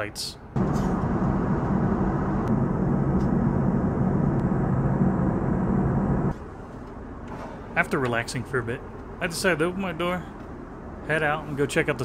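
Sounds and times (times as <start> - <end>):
airliner cabin noise: 0.6 - 12.0.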